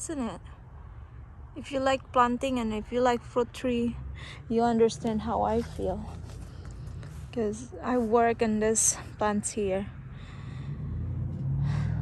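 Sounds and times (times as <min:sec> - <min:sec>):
person drawing breath: 0:10.1 - 0:11.0.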